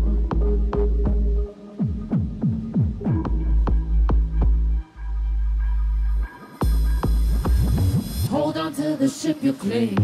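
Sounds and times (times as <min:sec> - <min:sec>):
electronic club music: 0:00.0 - 0:10.0.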